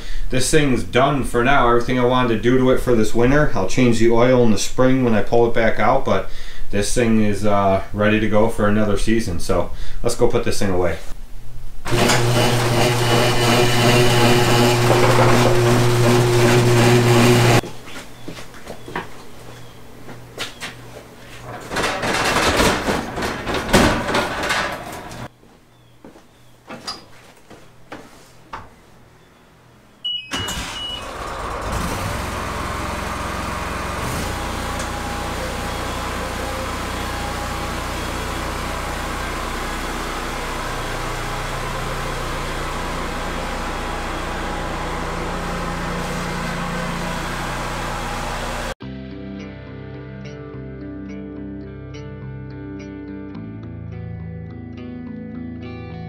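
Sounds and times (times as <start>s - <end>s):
riding lawn mower engine running: 11.9s - 17.6s, 21.4s - 25.3s, 30.3s - 48.8s
irregular clattering: 21.4s - 25.3s.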